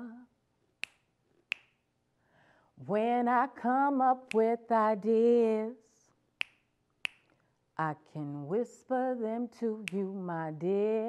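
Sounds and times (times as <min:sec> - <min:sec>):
finger snaps: 0:00.8 - 0:01.8, 0:04.2 - 0:04.6, 0:06.4 - 0:07.4, 0:09.8 - 0:10.2.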